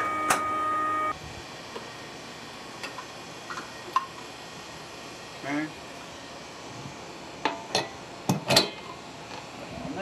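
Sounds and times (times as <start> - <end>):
suction fan whining: 0.0 - 10.0.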